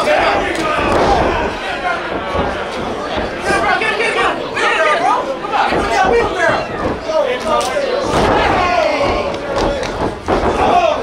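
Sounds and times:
crowd talking and shouting: 0:00.0 - 0:11.0.

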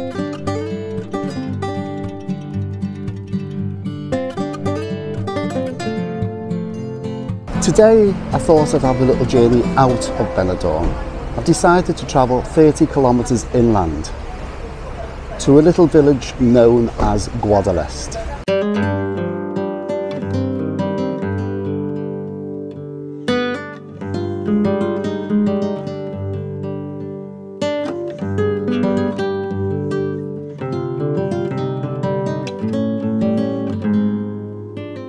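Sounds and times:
loud guitar chord strums: 0:00.0 - 0:14.6, 0:18.4 - 0:35.0
acoustic guitar music: 0:00.0 - 0:35.0.

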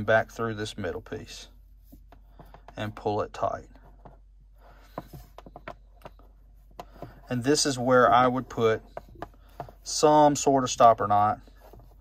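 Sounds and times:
rope rubbing: 0:03.7 - 0:12.0.

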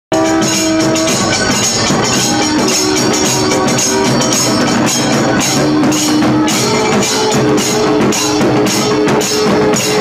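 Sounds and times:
brass horns playing: 0:00.1 - 0:07.8
barrel drums drumming: 0:00.1 - 0:10.0.

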